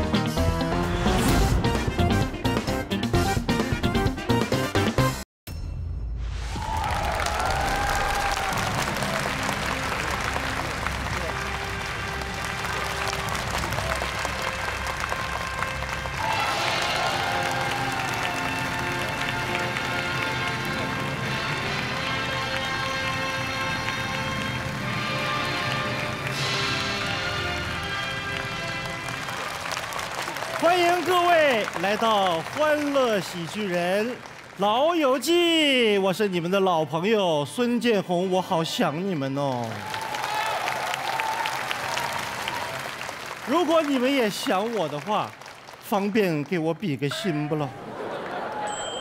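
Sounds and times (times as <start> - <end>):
entrance music: 5.6 - 30.1
audience applauding: 6.6 - 35.7, 39.5 - 48.8.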